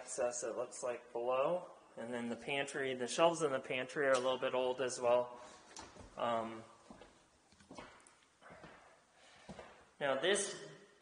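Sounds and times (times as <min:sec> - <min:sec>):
faint footsteps on hard floor: 0:06.8 - 0:09.9.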